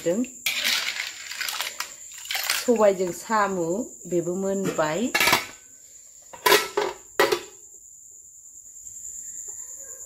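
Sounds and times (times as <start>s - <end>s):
metal ladle scraping a pot: 0.4s - 2.6s.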